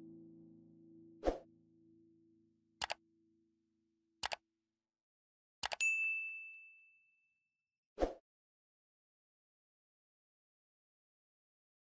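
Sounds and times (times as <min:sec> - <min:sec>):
bright bell chime: 0:05.8 - 0:07.4.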